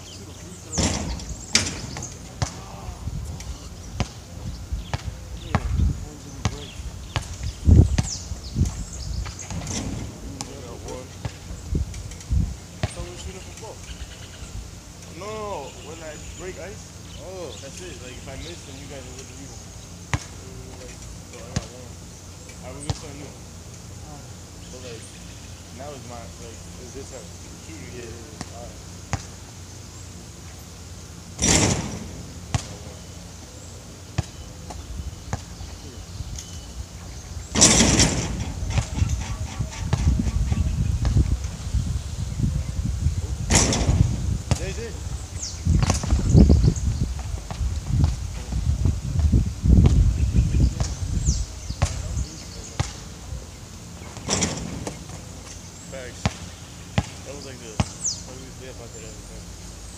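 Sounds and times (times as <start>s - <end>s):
low rumbling noise: 0.0s - 59.9s
basketball bouncing on court: 4.0s - 4.2s, 4.9s - 5.8s, 6.4s - 8.2s, 31.4s - 32.9s, 52.8s - 53.0s, 56.2s - 57.2s, 57.8s - 58.0s.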